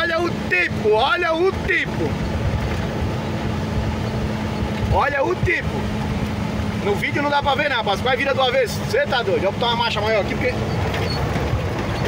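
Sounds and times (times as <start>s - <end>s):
diesel truck engine hum: 0.0s - 12.0s
road and cab rumble: 0.0s - 12.0s.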